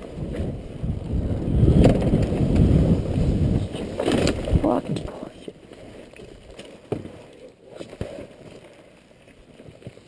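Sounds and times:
bike rattling over ground: 0.0 - 4.7
wind on microphone: 0.0 - 5.3.

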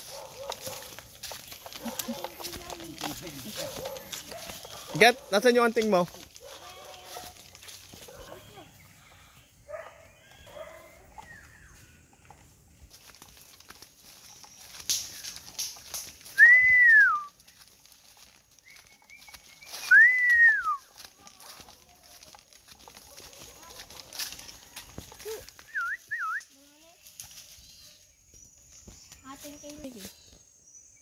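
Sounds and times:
footsteps through undergrowth: 0.0 - 30.8
person whistling: 16.4 - 17.3, 19.8 - 20.8, 25.7 - 26.5.

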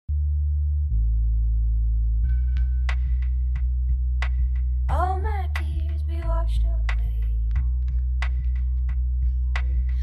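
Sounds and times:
deep electronic bass tones: 0.1 - 10.0.

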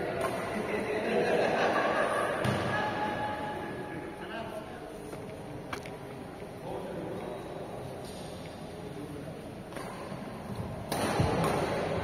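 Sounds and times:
indistinct talk echoing: 0.0 - 12.0.

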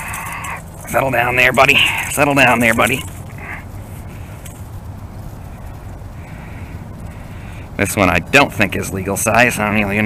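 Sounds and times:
dry leaves rustling: 0.0 - 7.8
steady low rumble: 0.0 - 10.0.

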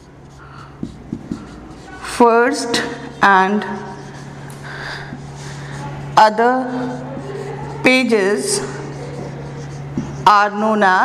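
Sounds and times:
low room hum: 0.0 - 11.0
marker writing on whiteboard: 0.0 - 11.0.

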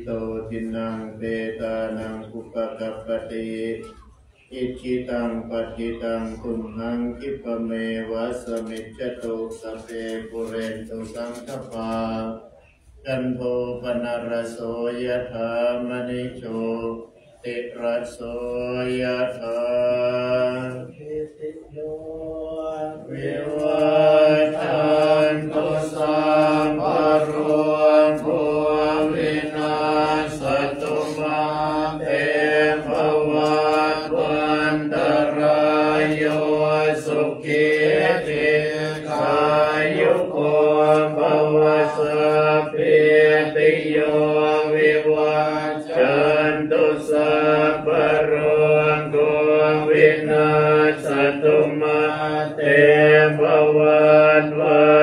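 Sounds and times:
monks chanting in unison: 0.0 - 55.0.

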